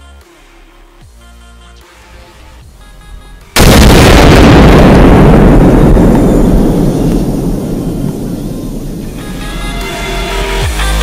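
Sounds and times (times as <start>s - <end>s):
explosion rumble: 3.6s - 9.7s
electronic music: 8.2s - 11.0s.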